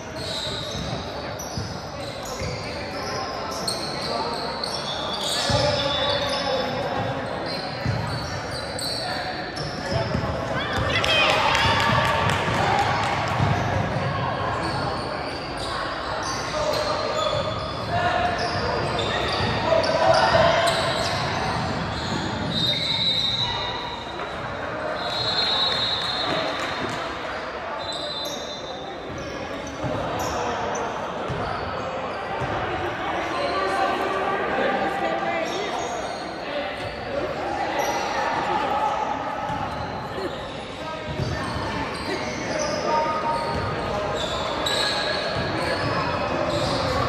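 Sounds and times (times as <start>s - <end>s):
people talking in echoing hall: 0.0s - 47.0s.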